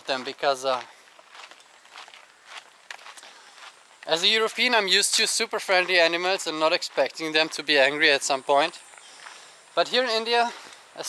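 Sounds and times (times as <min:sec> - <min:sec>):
faint footsteps on path: 0:00.0 - 0:11.0.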